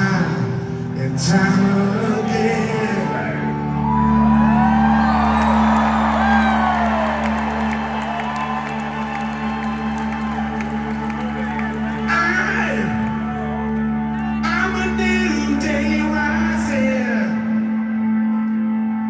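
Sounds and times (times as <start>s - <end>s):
crowd whooping and cheering: 3.6s - 14.6s.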